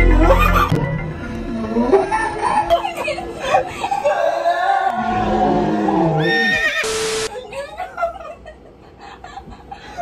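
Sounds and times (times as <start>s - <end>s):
static hiss with hum: 6.7s - 7.3s.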